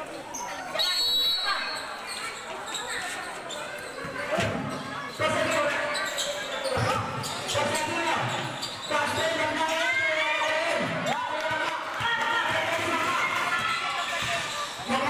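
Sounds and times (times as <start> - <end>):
basketball bouncing: 10.8 - 15.0.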